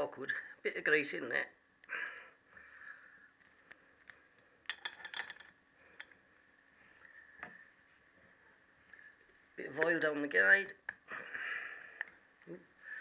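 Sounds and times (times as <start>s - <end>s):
small metal parts clicking and tapping: 3.4s - 6.2s.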